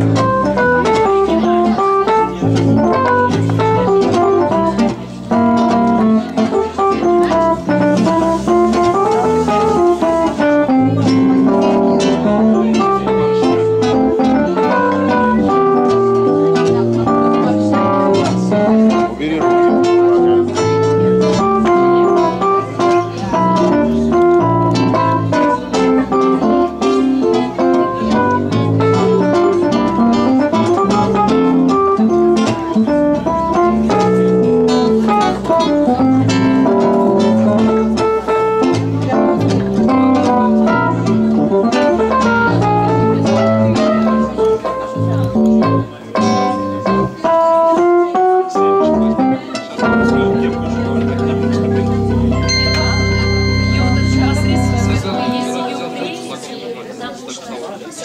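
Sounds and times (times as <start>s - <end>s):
organ-like keyboard chords: 0.0s - 57.1s
acoustic guitar plucked notes: 0.0s - 57.7s.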